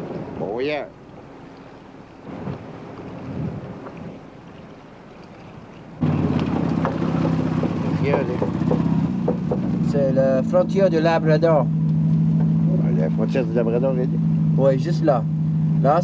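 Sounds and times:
faint outdoor background: 0.0 - 16.0
off-road vehicle engine: 6.0 - 16.0.

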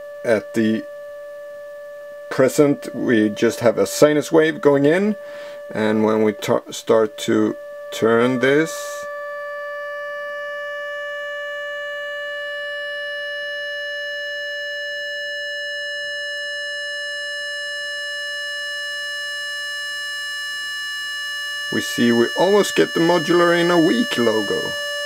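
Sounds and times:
steady synthesizer tone: 0.0 - 25.0.

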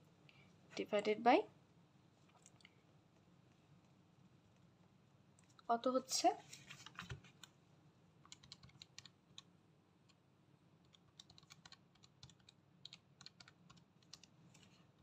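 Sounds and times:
calculator keys clicking: 8.3 - 9.1, 10.9 - 14.3.

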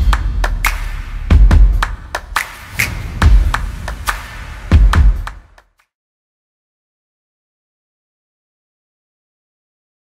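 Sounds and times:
deep bass hits: 2.8 - 5.3.

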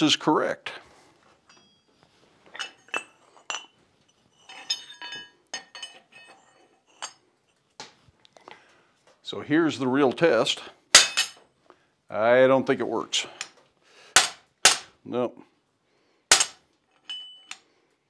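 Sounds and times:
steel clinking on anvil: 1.5 - 7.2, 11.0 - 11.4, 16.3 - 17.7.

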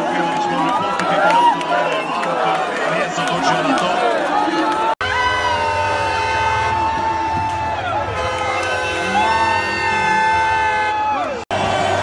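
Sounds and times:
crowd shouting: 0.0 - 12.0
loud held horn note: 5.0 - 12.0.

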